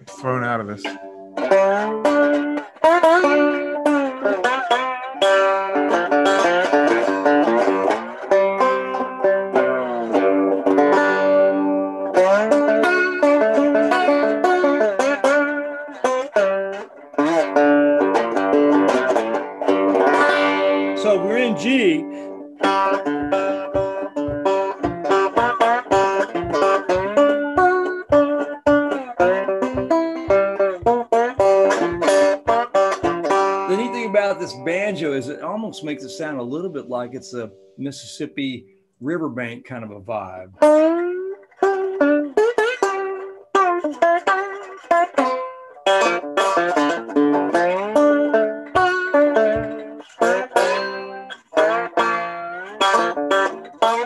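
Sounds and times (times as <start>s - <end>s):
fingerpicked banjo: 0.0s - 54.0s.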